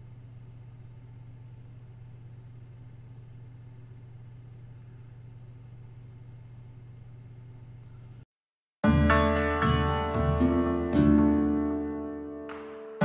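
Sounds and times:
steady low hum: 0.0 - 8.3.

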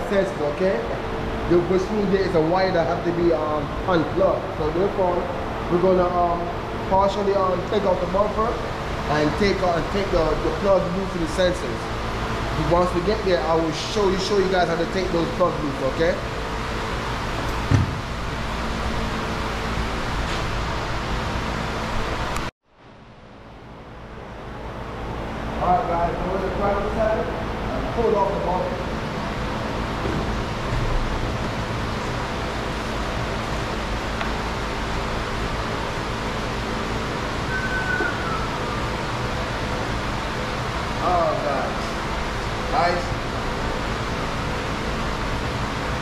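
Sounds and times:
shop fan humming: 0.0 - 46.0.

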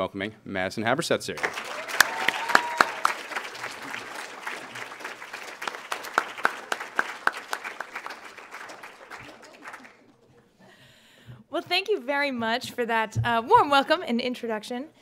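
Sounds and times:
audience applauding: 1.4 - 10.2.

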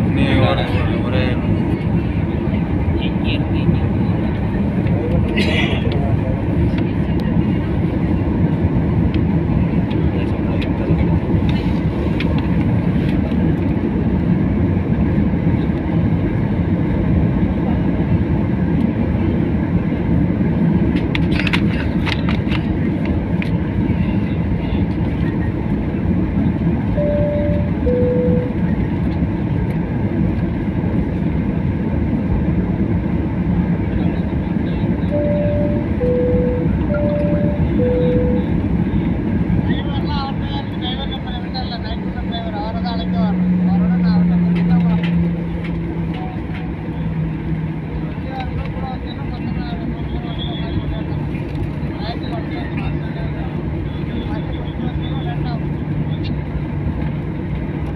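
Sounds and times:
jet airliner rumble: 0.0 - 57.9
two-tone cabin chime: 27.0 - 28.6, 35.1 - 38.5.

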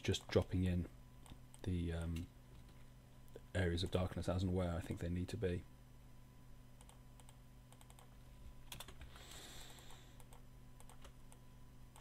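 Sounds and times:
low steady hum: 0.0 - 12.0
computer keyboard and mouse clicks: 6.8 - 8.1, 8.7 - 9.0, 9.8 - 11.4.

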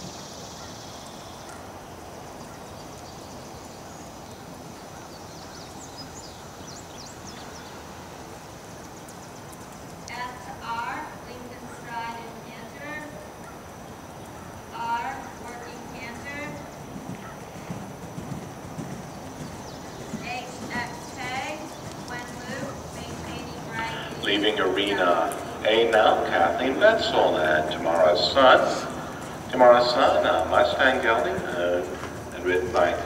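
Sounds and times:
low background noise: 0.0 - 33.0
bird chirps: 13.4 - 33.0
horse hoofbeats on soft dirt: 14.3 - 33.0.

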